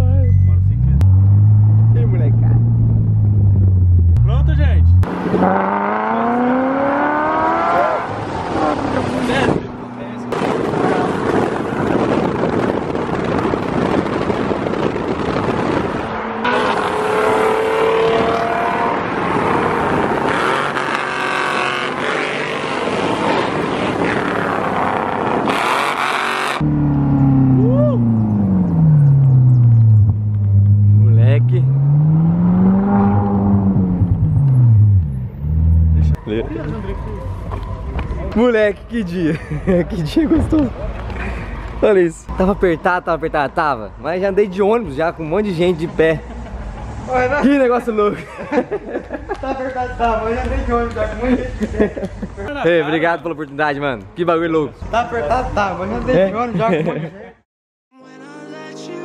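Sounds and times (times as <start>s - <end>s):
road noise: 0.0s - 57.4s
car engine revving: 0.3s - 38.1s
wind rushing: 5.1s - 21.2s.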